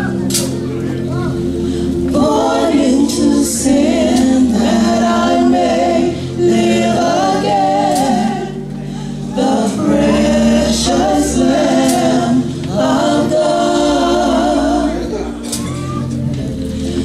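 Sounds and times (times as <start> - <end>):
low held accompaniment: 0.0 - 17.0
women singing in harmony: 1.7 - 17.0.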